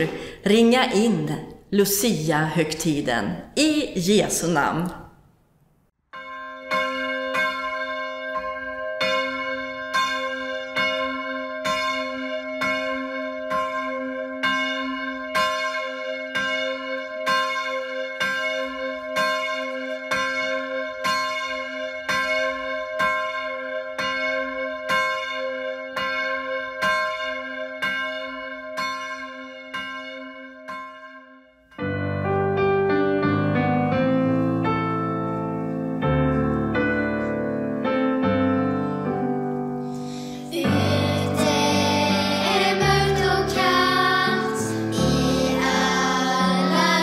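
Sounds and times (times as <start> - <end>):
church bell tolling: 6.1 - 47.0.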